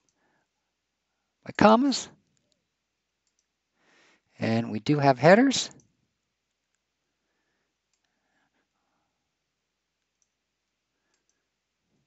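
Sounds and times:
faint computer mouse clicks: 0:03.2 - 0:03.5, 0:07.8 - 0:08.2, 0:10.0 - 0:11.5.

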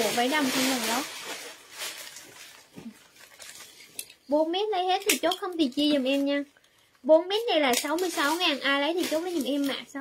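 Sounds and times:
fabric rustling: 0:00.0 - 0:04.1.

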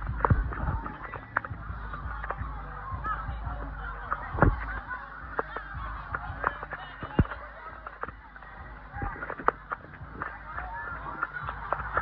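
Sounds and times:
raindrops clicking close by: 0:00.0 - 0:02.5, 0:04.1 - 0:12.0
crowd shouts: 0:00.0 - 0:12.0.

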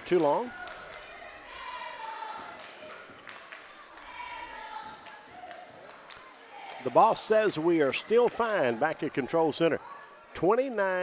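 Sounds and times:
crowd voices: 0:00.0 - 0:11.0.

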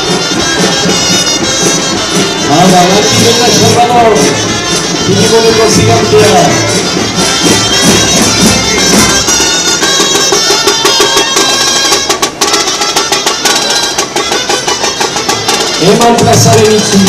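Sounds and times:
regular drumbeat: 0:00.0 - 0:17.0
wind instruments playing melody: 0:00.0 - 0:17.0.

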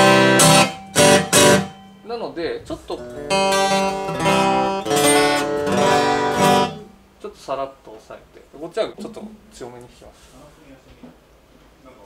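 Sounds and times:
acoustic guitar strummed hard: 0:00.0 - 0:02.1, 0:02.8 - 0:07.1.

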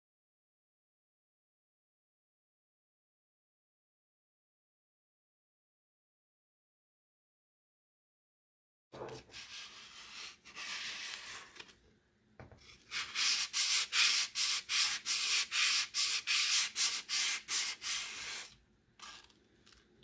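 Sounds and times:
sandpaper scraping wood: 0:09.3 - 0:11.6, 0:12.8 - 0:19.2.

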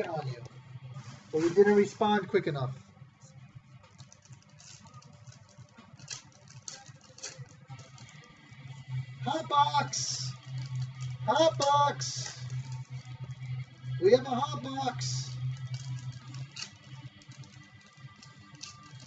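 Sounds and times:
background music: 0:00.0 - 0:19.0
trading card packs crinkling: 0:03.8 - 0:08.4
person speaking: 0:09.2 - 0:10.4, 0:11.3 - 0:12.4, 0:14.0 - 0:15.3.

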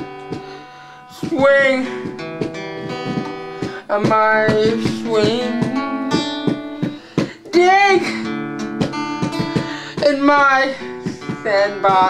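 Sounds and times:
acoustic guitar strumming: 0:00.0 - 0:12.0.

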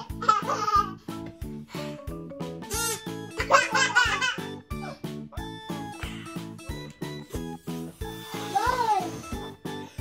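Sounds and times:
toddler laughing: 0:00.0 - 0:01.0, 0:02.7 - 0:05.0
background music with beat: 0:00.0 - 0:10.0.

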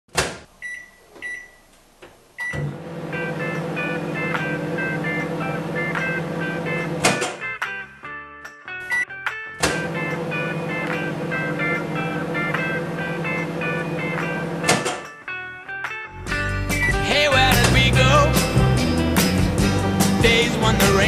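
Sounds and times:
microwave keypad beeps: 0:00.6 - 0:01.6
microwave oven humming: 0:02.4 - 0:07.4, 0:09.6 - 0:15.0
background music: 0:03.2 - 0:21.0.

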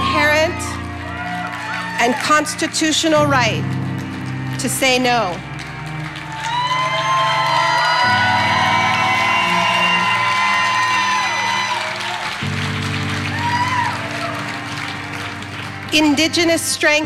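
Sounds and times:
audience cheering and whooping: 0:00.0 - 0:02.6, 0:05.8 - 0:15.8.

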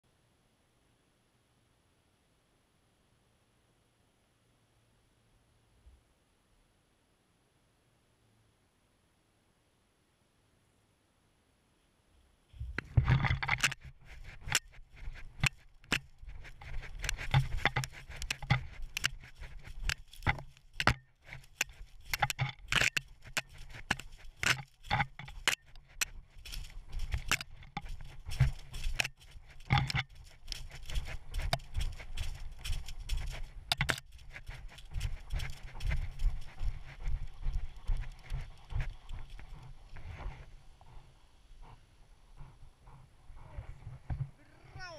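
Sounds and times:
brush scraping and rustling: 0:12.5 - 0:44.9.

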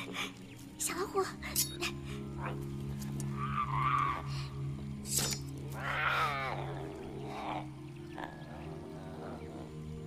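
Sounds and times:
low music drone: 0:00.0 - 0:10.0
tiger cub whimpering: 0:05.1 - 0:10.0.

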